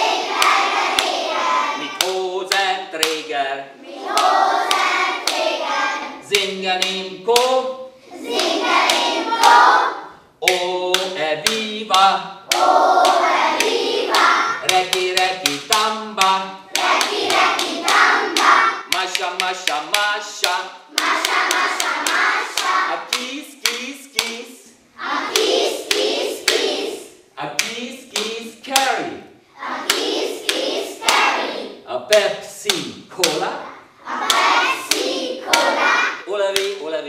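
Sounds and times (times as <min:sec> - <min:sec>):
children singing: 0:00.0 - 0:03.1, 0:03.8 - 0:07.0, 0:08.0 - 0:11.5, 0:12.5 - 0:15.6, 0:16.2 - 0:23.2, 0:25.0 - 0:27.2, 0:29.5 - 0:32.0, 0:33.2 - 0:36.7
sharp claps: 0:00.0 - 0:03.3, 0:04.1 - 0:05.6, 0:06.3 - 0:07.7, 0:08.3 - 0:09.6, 0:10.4 - 0:24.6, 0:25.3 - 0:29.0, 0:29.8 - 0:31.4, 0:32.1 - 0:33.5, 0:34.2 - 0:35.9, 0:36.5 - 0:36.8
man singing: 0:01.8 - 0:03.8, 0:06.2 - 0:08.0, 0:10.4 - 0:12.4, 0:14.6 - 0:16.7, 0:18.9 - 0:20.8, 0:22.9 - 0:24.8, 0:27.4 - 0:29.2, 0:36.2 - 0:37.0.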